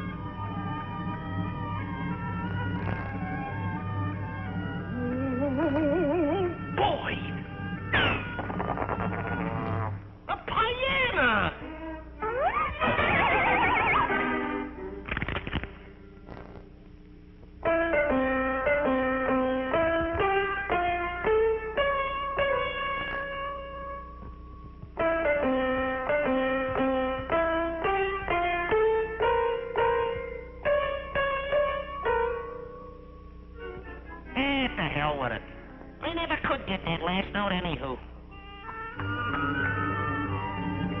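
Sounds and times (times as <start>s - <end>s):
wavering sliding cartoon cry: 12.2s - 14.3s.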